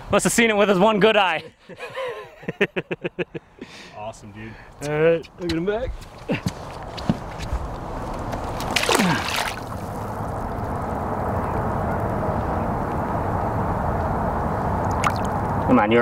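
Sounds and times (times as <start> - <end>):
lake water sloshing and trickling: 8.3 - 10.4, 14.9 - 15.4.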